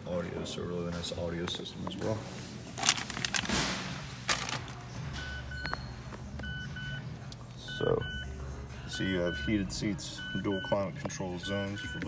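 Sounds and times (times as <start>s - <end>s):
car warning chime beeps: 7.6s - 12.0s.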